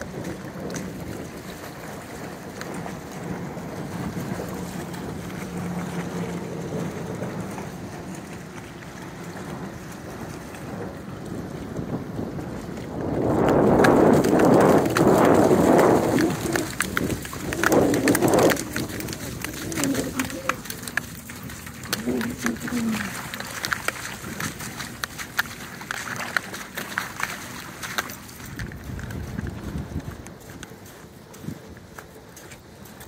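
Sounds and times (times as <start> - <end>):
steady outdoor noise: 0.0 - 33.0
water splashing: 0.0 - 33.0.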